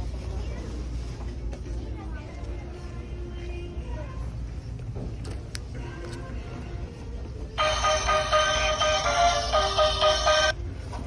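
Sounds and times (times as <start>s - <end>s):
tinny electronic tune: 7.6s - 10.6s.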